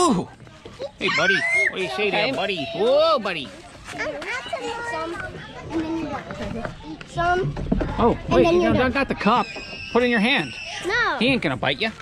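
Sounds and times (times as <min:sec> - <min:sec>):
child and adults talking: 0:00.0 - 0:12.0.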